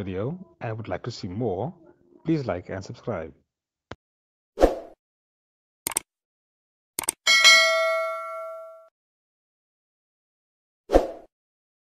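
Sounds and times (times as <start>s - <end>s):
notification bell ding: 7.3s - 8.9s.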